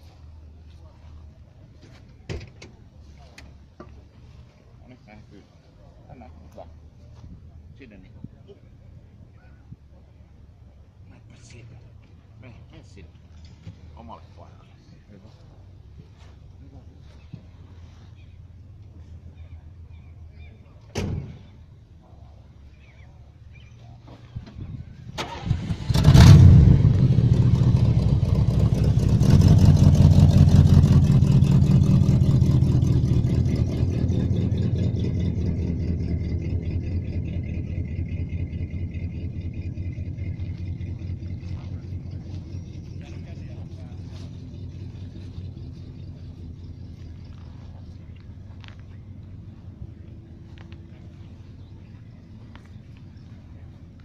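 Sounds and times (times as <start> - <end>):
car engine idling: 21.5 - 54.0
car engine cranking: 25.1 - 50.9.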